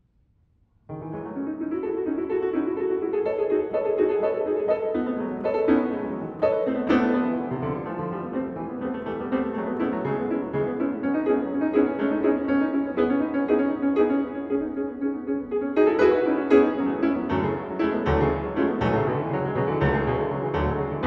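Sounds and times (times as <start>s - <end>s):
fast solo piano passage: 0.9s - 21.0s.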